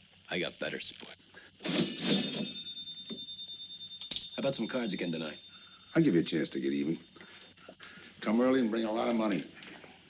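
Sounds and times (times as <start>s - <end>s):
cash register bell ringing: 1.7s - 7.4s.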